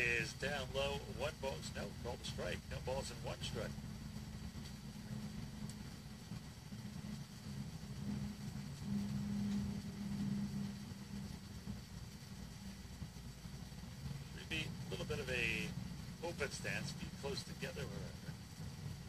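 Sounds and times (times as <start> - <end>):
low rumbling hum: 0.0 - 19.0.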